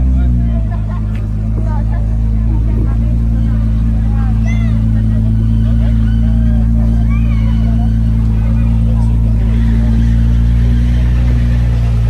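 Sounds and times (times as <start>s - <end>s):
car engine idling: 0.0s - 12.0s
people chattering: 0.0s - 12.0s.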